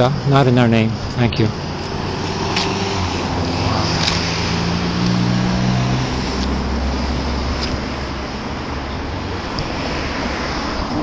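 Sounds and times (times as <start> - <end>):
road traffic noise: 0.0 - 11.0
passing car engine hum: 1.4 - 11.0.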